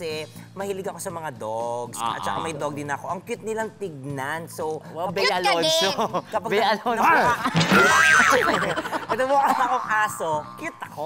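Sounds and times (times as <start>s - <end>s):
people shouting and laughing: 5.2s - 6.2s, 7.0s - 11.0s.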